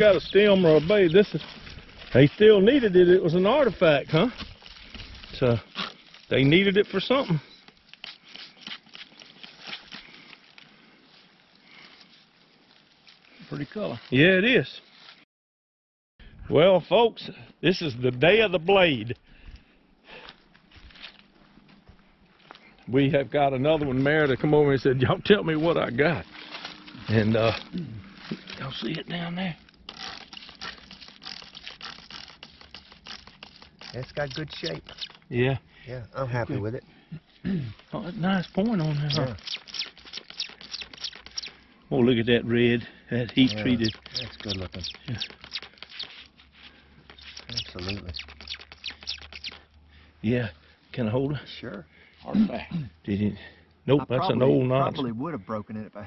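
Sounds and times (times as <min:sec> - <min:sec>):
fingers scratching dry soil: 0:00.0 - 0:10.6, 0:23.8 - 0:35.3, 0:37.8 - 0:42.2, 0:43.1 - 0:49.7
spray bottle squirting: 0:29.8 - 0:35.3, 0:38.8 - 0:41.6, 0:43.3 - 0:46.4, 0:47.0 - 0:49.7.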